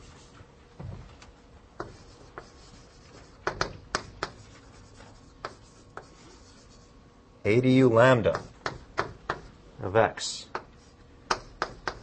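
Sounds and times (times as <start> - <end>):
writing strokes on a board: 1.8 - 6.9, 8.2 - 9.5, 10.4 - 12.0.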